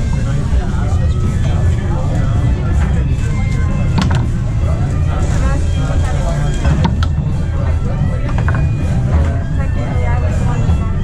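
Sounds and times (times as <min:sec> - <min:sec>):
background voices: 0:00.0 - 0:11.0
steady low rumble: 0:00.0 - 0:11.0.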